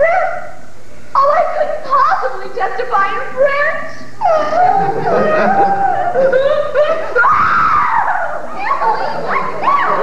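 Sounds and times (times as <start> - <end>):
woman wailing cry: 4.2 - 8.4.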